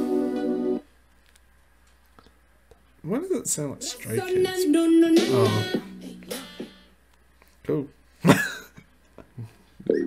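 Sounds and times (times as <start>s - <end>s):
man coughing: 8.2s - 8.8s.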